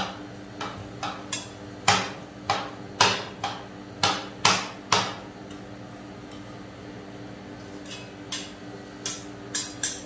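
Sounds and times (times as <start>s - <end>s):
metal spatulas clacking on metal: 7.9s - 10.0s.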